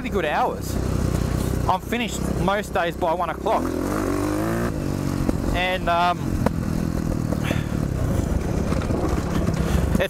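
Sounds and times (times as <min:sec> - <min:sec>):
dirt bike engine running: 0:00.0 - 0:10.0.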